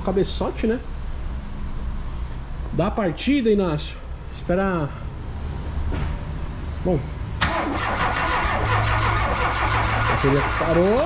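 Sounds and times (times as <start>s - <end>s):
car engine cranking: 7.4s - 11.0s.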